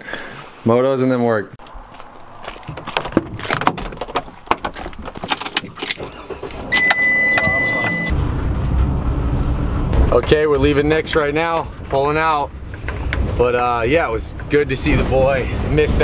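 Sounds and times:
clicks and knocks: 2.7s - 7.5s
high dashboard chime: 6.7s - 8.2s.

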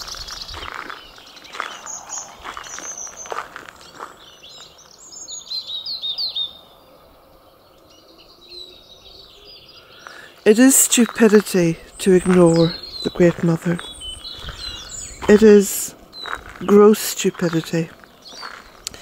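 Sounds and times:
small birds singing and calling: 0.0s - 19.0s.

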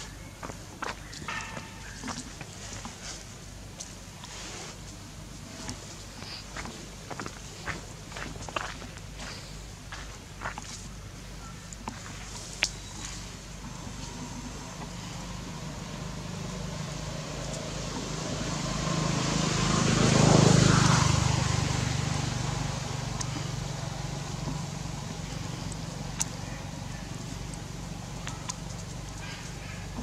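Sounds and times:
vehicle engine passing by: 13.7s - 30.0s.

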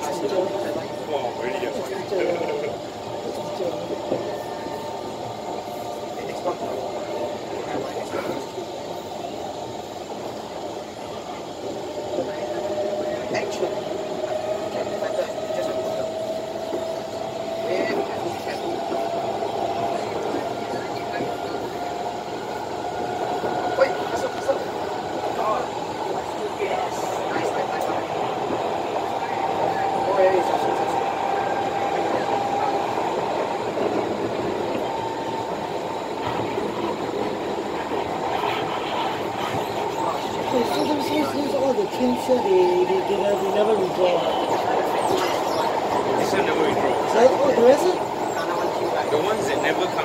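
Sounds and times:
wheels rumbling on track: 0.0s - 50.0s.

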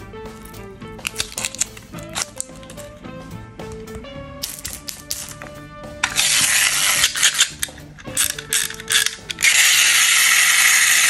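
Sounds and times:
clockwork toy buzzing: 6.0s - 11.0s
ratchet clicking of wind-up key: 6.0s - 11.0s.

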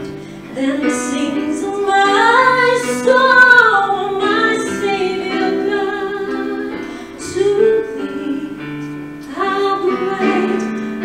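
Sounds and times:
woman singing slow worship song: 0.0s - 11.0s.

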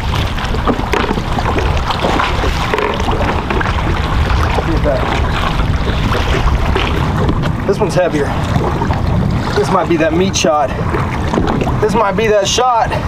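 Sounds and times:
small knocks and splashes: 0.0s - 9.7s
wind buffeting microphone: 0.0s - 13.0s.

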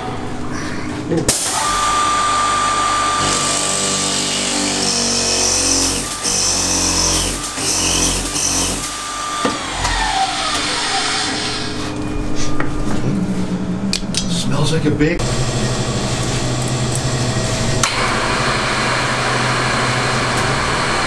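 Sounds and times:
lathe motor running: 1.4s - 11.8s, 15.2s - 21.0s.

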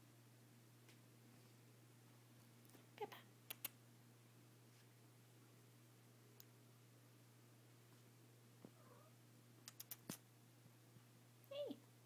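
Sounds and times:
sharp clicks: 3.5s - 3.8s, 9.6s - 10.2s
cat meowing: 8.8s - 9.2s.

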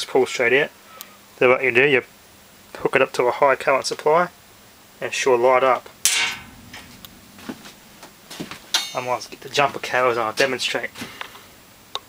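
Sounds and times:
metal object clanking: 6.1s - 7.0s, 8.7s - 9.4s.

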